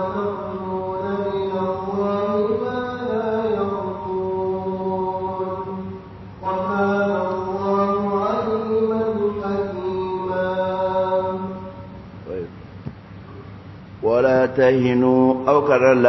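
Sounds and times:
voice chanting recitation: 0.0s - 12.5s, 14.0s - 16.0s.

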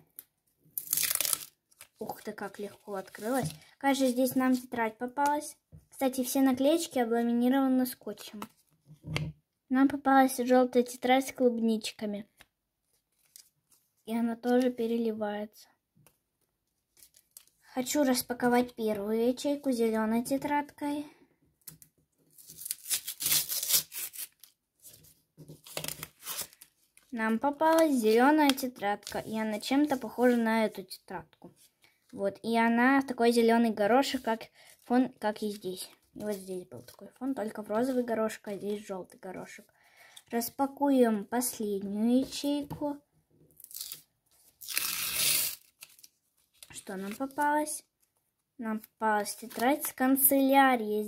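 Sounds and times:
paper tearing: 0.8s - 1.6s, 22.4s - 24.5s, 44.6s - 46.1s.

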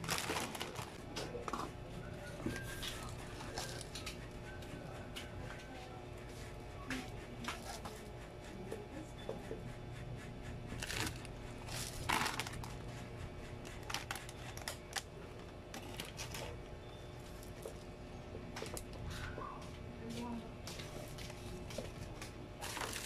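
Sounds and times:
rustle of snack packages: 0.0s - 1.0s, 10.8s - 12.8s, 13.8s - 15.1s, 22.6s - 23.0s
plastic packaging clicks and crinkles: 0.0s - 1.6s, 10.8s - 12.8s, 13.6s - 16.6s, 22.2s - 23.0s
steady low hum: 0.0s - 23.0s.

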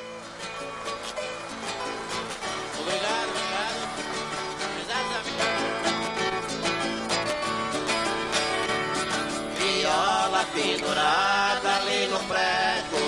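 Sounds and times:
plucked folk guitars playing: 0.0s - 13.0s.

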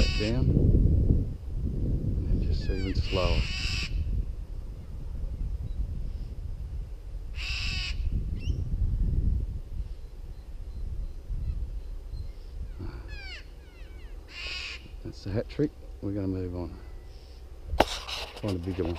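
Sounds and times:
steady low rumble: 0.0s - 18.9s
crow cawing: 3.1s - 4.0s, 7.4s - 8.0s, 13.1s - 15.0s.

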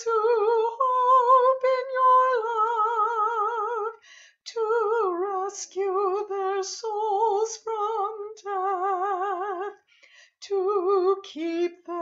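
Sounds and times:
woman singing unaccompanied: 0.0s - 9.8s, 10.4s - 12.0s.

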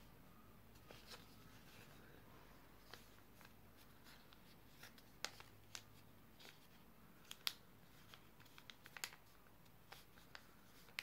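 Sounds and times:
paper rustling: 0.7s - 2.1s, 2.8s - 11.0s
paper crackling: 2.8s - 11.0s.

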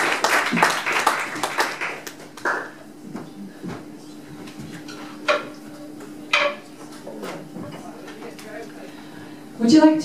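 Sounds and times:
audience clapping: 0.0s - 2.9s.

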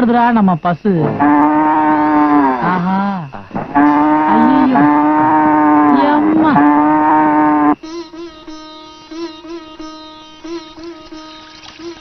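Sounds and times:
cow mooing: 1.0s - 7.8s.

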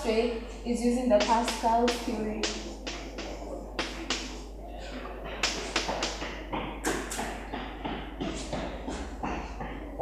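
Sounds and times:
chalk tapping on chalkboard: 1.2s - 4.4s, 5.3s - 9.8s.

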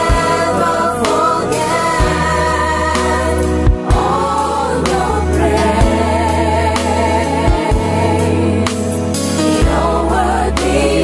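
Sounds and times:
band with bass and drums: 0.0s - 11.0s
choir singing gospel song: 0.0s - 11.0s.

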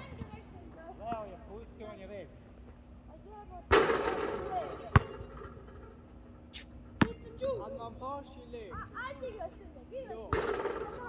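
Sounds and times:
basketball bounces: 3.7s - 5.9s, 6.9s - 7.3s, 10.3s - 11.0s.

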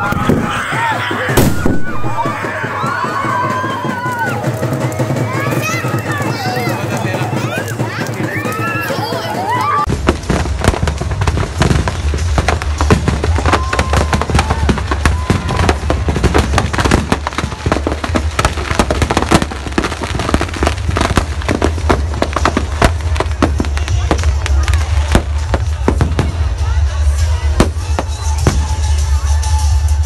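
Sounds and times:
firecrackers cracking and banging: 0.0s - 30.0s.

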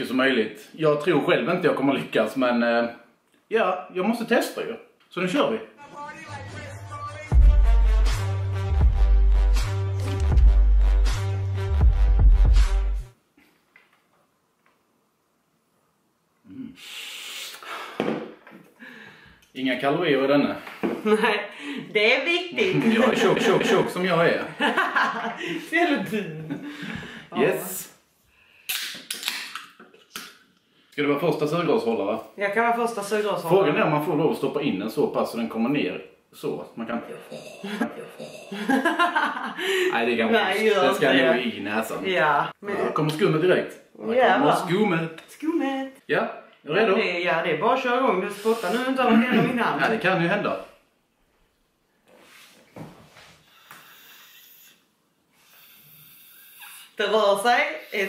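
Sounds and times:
can opening hiss: 16.8s - 17.8s, 28.6s - 30.4s, 53.6s - 54.8s, 55.4s - 57.0s
breathy inhalations through straw: 16.8s - 18.0s, 53.3s - 57.0s.

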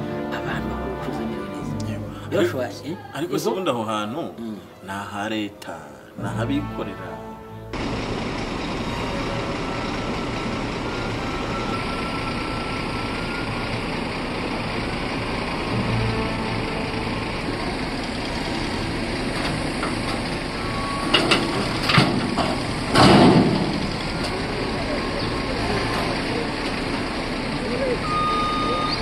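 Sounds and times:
heavy diesel machinery running: 7.7s - 29.0s
loud sudden knocks: 21.1s - 23.9s.

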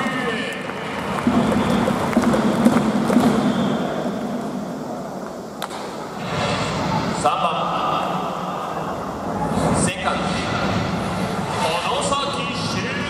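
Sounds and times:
crowd applauding: 0.0s - 4.9s.

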